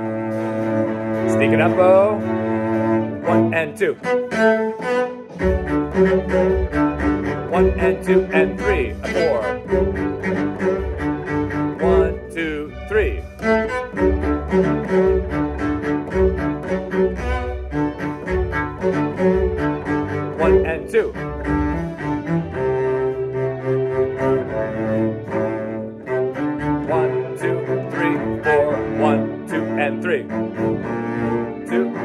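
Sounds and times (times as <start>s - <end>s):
cello playing: 0.0s - 32.0s
string orchestra recording: 0.0s - 32.0s
man counting beats: 1.3s - 2.2s, 3.2s - 4.1s, 7.4s - 9.7s, 11.7s - 13.5s, 20.3s - 21.2s, 26.8s - 30.3s, 31.6s - 32.0s.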